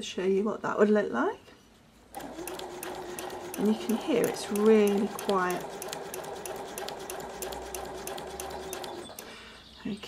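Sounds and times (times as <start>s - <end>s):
sewing machine running: 2.1s - 9.3s.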